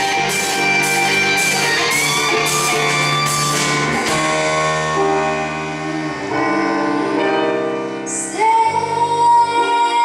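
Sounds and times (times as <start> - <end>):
live pop band: 0.0 - 10.0
woman singing: 8.1 - 10.0.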